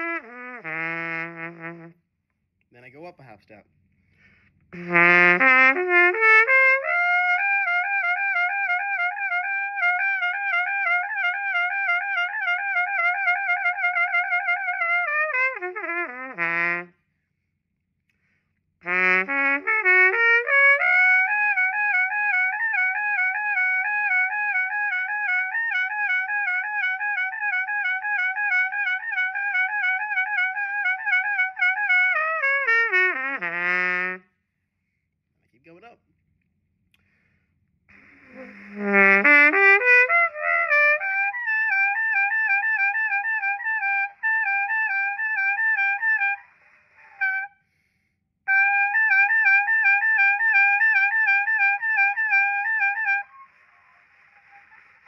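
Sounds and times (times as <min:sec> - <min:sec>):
trumpet playing lip slurs: 0:00.0 - 0:02.0, 0:04.3 - 0:17.0, 0:18.1 - 0:34.3, 0:37.9 - 0:55.0.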